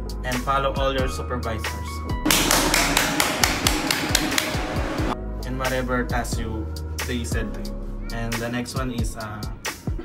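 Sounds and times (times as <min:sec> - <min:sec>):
rapid sharp percussive hits: 0:02.3 - 0:05.2.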